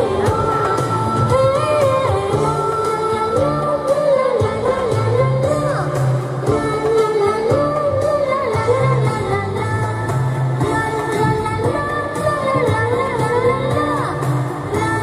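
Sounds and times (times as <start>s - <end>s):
amplified instrumental accompaniment: 0.0s - 15.0s
girl singing into a microphone: 0.0s - 15.0s.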